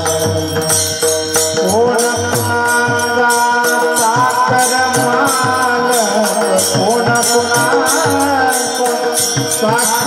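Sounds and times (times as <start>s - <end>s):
drum: 0.0s - 10.0s
hand cymbals struck: 0.0s - 10.0s.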